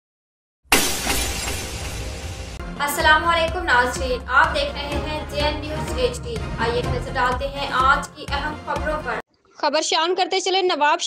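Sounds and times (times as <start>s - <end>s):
loud crash-like hit: 0.7s - 2.6s.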